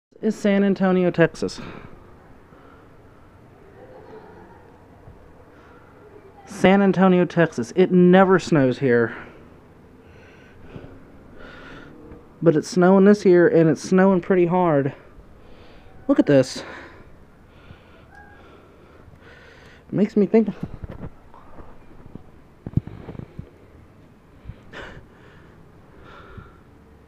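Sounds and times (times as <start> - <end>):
faint background hiss: 0.1 - 27.0
soft breathing: 1.6 - 3.4, 5.3 - 6.2, 9.1 - 12.4, 14.9 - 19.9, 22.6 - 27.0.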